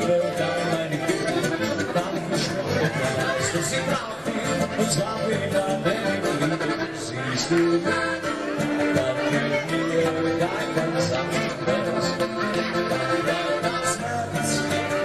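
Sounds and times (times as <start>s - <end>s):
accordion melody: 0.0s - 15.0s
acoustic guitar: 0.0s - 15.0s
bass guitar: 0.0s - 15.0s.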